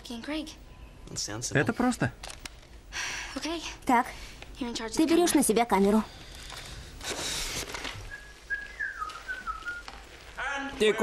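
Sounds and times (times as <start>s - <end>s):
man whistling a tune: 8.1s - 9.8s.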